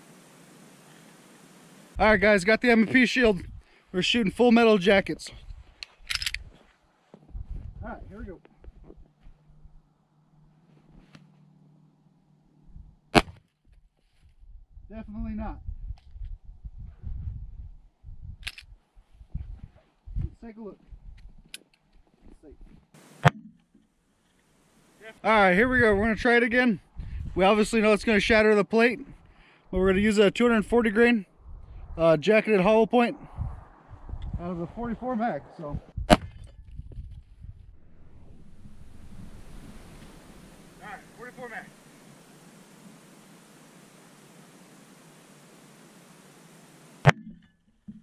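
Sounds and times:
wind buffeting microphone: 3.2s - 3.7s, 5.3s - 6.6s, 7.3s - 9.8s, 14.4s - 21.5s, 25.6s - 26.2s, 26.8s - 28.3s, 31.3s - 32.1s, 33.1s - 41.8s.

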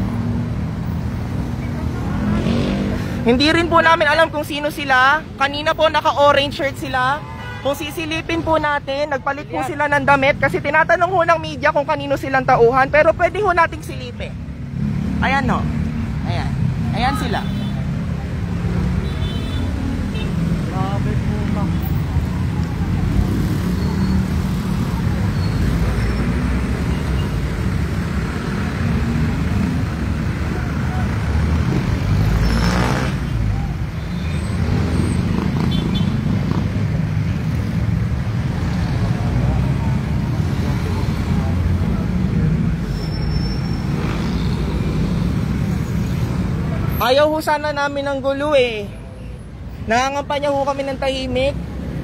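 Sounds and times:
road traffic rumble: 0.0s - 52.0s.

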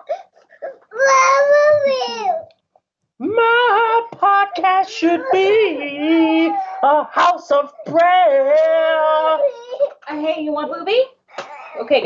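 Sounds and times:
toddler crying: 0.0s - 2.5s, 4.6s - 7.4s, 8.8s - 10.0s.

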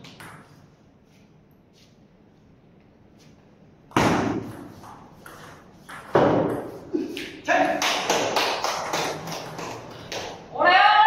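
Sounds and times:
loud shout: 10.5s - 11.0s.

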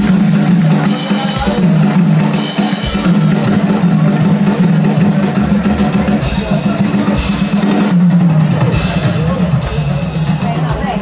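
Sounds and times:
drumming: 0.0s - 11.0s
live band holding low note: 0.0s - 11.0s.

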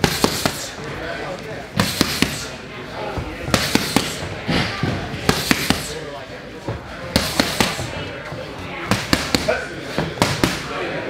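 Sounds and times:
boxing gloves smacking focus mitts: 1.8s - 2.5s, 3.5s - 4.3s, 5.2s - 6.0s, 7.1s - 8.0s, 8.9s - 10.6s.

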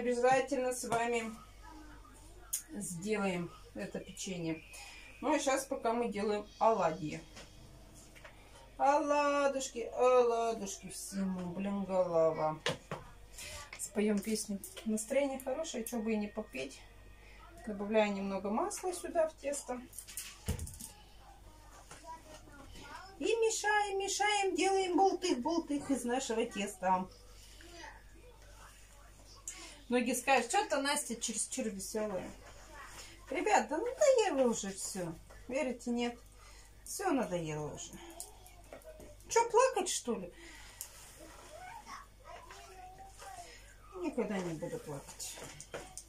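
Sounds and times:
faint murmurs of woman's voice: 0.0s - 46.0s
faint speech: 1.2s - 5.3s, 20.5s - 23.3s.

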